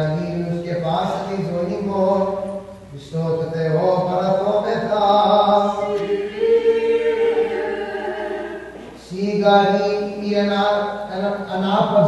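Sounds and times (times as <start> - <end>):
voices singing chant a cappella: 3.8 - 9.6.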